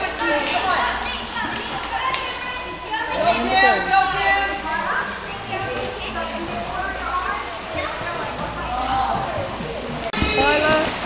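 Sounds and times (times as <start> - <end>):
children's voices: 0.0 - 10.8
splashing in water: 5.0 - 11.0
sharp splashes: 5.7 - 11.0.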